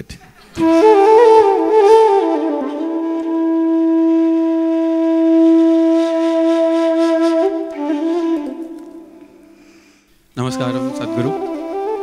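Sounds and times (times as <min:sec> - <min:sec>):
flute holding long note: 0:00.6 - 0:09.6, 0:10.4 - 0:12.0.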